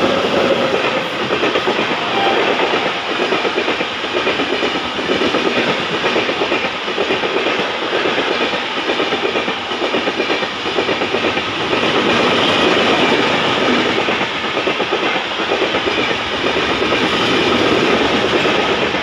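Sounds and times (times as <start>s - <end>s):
train wheels rumbling on rails: 0.0s - 19.0s
rapid clickety-clack of wheels: 3.1s - 19.0s.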